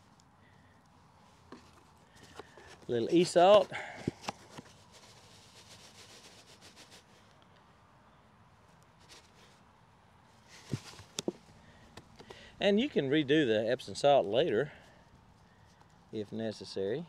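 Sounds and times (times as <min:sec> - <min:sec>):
faint rustling: 0:00.0 - 0:07.7, 0:08.6 - 0:13.2.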